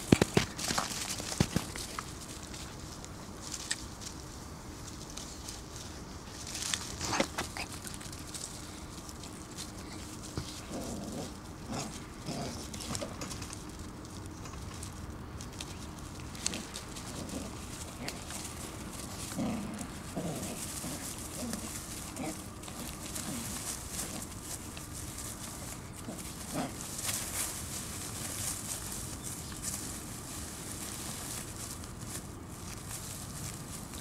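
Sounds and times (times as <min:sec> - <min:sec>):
puppy paws pattering on dirt: 0:00.0 - 0:34.0
puppy growling: 0:09.5 - 0:13.6, 0:16.2 - 0:28.8.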